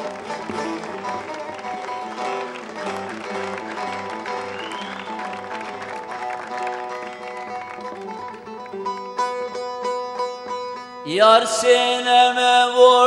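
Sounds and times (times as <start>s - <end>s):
lute playing picked melody: 0.0s - 13.0s.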